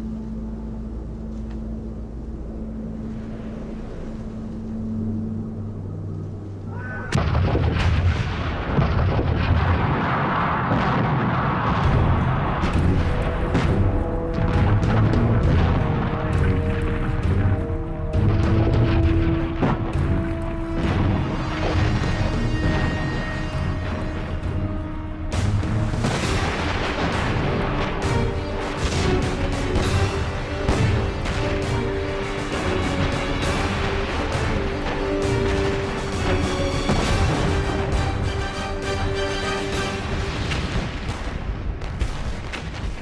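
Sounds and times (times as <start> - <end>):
low steady drone: 0.0 - 8.8
sustained music tones: 0.0 - 41.6
artillery barrage: 6.9 - 43.0.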